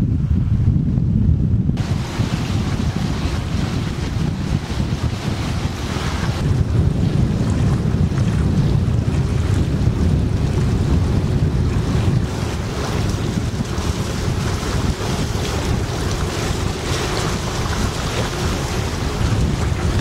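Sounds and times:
wind buffeting microphone: 0.0s - 20.0s
water washing along boat hull: 1.8s - 20.0s.

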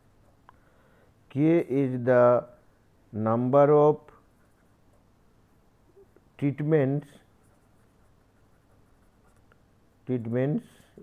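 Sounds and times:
room background hiss: 0.0s - 11.0s
pen scratching on paper: 7.3s - 9.5s.

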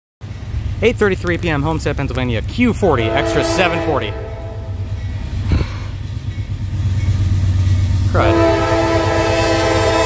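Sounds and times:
diesel locomotive rumble: 0.2s - 10.0s.

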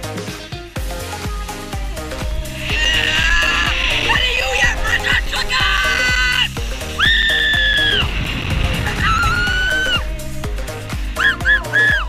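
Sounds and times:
music with steady bass line: 0.0s - 12.0s
riders screaming: 2.6s - 8.2s, 8.8s - 10.1s, 11.2s - 12.0s.

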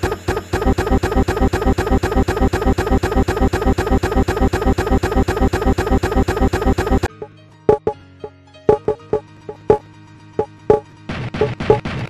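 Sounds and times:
stuttering computer audio loop: 0.0s - 8.0s, 8.7s - 9.8s, 10.5s - 10.8s, 11.4s - 11.9s.

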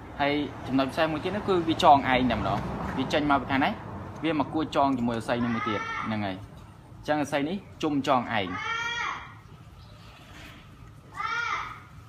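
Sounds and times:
high-pitched drawn-out cry: 11.1s - 12.0s.

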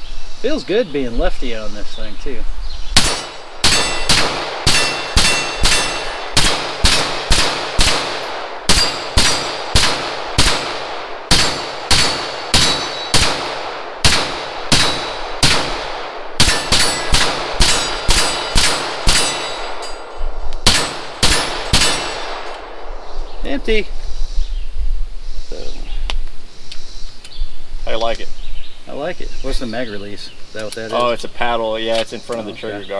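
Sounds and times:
gunshots in quick succession: 3.0s - 19.8s, 20.6s - 22.5s.

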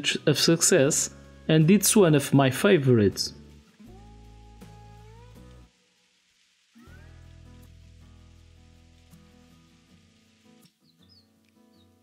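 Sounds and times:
quiet guitar music: 0.0s - 12.0s.

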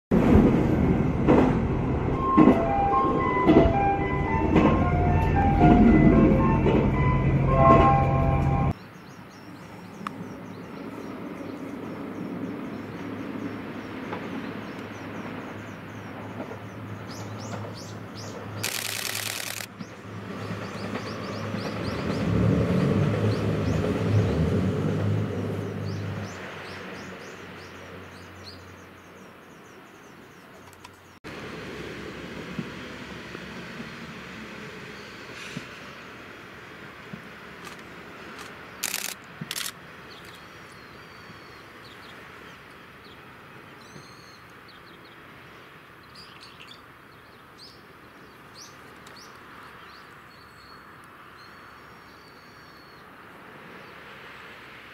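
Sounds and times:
train running rumble: 0.1s - 8.8s, 11.8s - 26.4s
distant diesel railcar: 0.1s - 49.3s
onboard chime melody: 2.2s - 8.7s
birds chirping: 8.2s - 22.3s, 38.7s - 45.3s
brief hiss: 35.3s - 35.8s.

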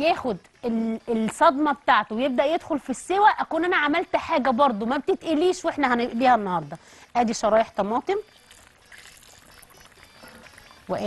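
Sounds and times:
water boiling in pot: 0.0s - 11.0s.

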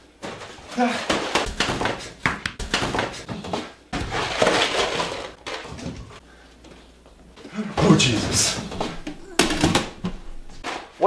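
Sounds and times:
household items clattering in cabinet: 2.7s - 6.2s, 7.8s - 10.9s.

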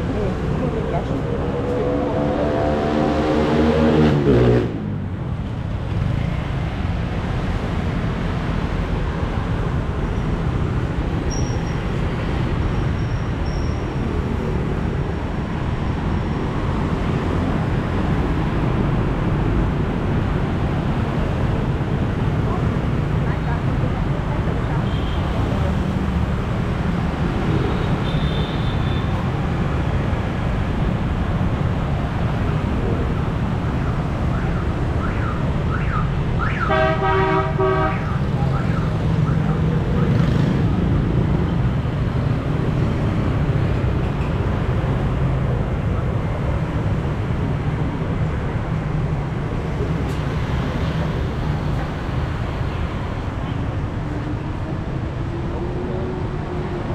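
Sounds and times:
motorbikes and scooters passing: 0.0s - 56.9s
vehicle horn honking: 36.6s - 38.2s.

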